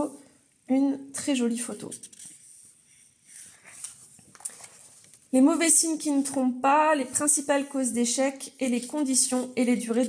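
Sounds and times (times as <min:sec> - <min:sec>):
book page turning: 0:02.0 - 0:05.3
light ticks of page settling: 0:03.7 - 0:05.2.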